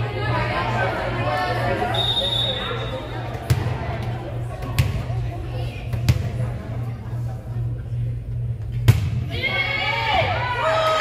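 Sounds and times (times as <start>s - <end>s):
referee's whistle: 1.9s - 3.0s
volleyball bouncing on gym floor: 3.4s - 5.2s, 5.9s - 6.5s, 8.8s - 9.3s.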